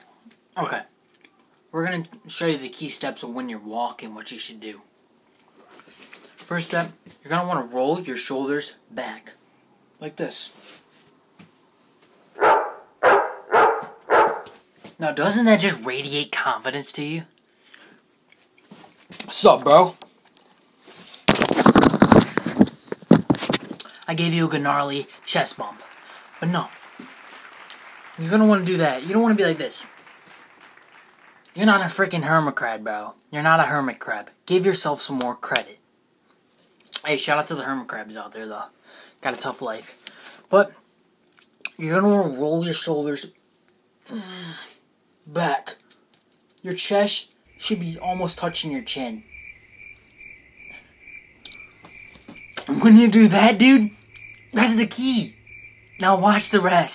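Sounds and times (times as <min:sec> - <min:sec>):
cricket chirping: 0:47.5 - 0:56.9.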